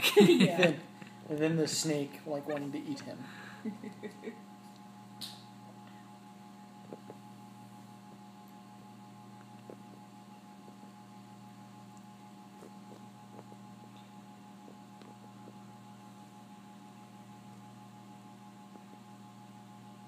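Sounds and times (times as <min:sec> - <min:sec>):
electrical hum of equipment: 0:00.0 - 0:20.0.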